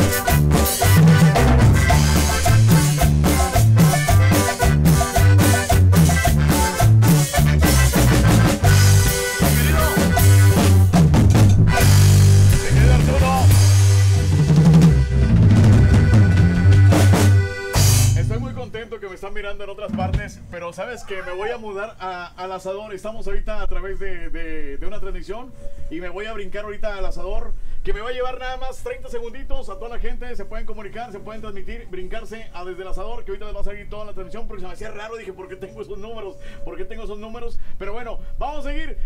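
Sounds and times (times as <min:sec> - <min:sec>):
band with guitars and drums: 0:00.0 - 0:18.7, 0:19.8 - 0:21.1
man talking: 0:09.4 - 0:10.4, 0:11.7 - 0:13.7, 0:18.1 - 0:39.0.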